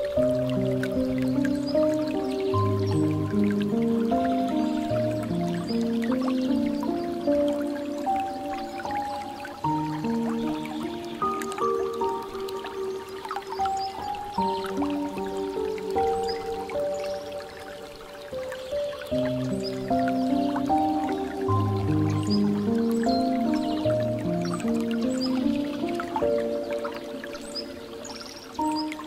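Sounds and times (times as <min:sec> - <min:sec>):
soft slow piano music: 0:00.0 - 0:29.0
water dripping into pool: 0:00.0 - 0:29.0.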